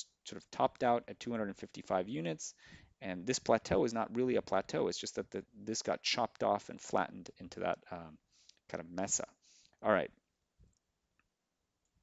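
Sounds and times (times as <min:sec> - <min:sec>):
person speaking: 0:00.0 - 0:10.1.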